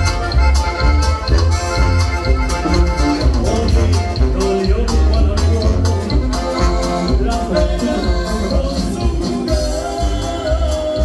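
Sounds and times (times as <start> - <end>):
accordion melody: 0.0 - 11.0
sousaphone bass notes: 0.0 - 11.0.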